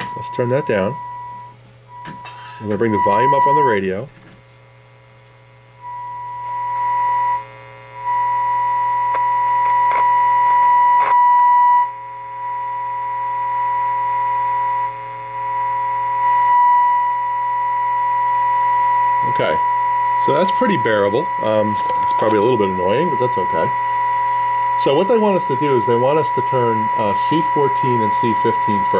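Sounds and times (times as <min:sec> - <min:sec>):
steady high test tone: 0:00.0 - 0:04.1, 0:05.8 - 0:28.9
low hum: 0:04.8 - 0:28.9.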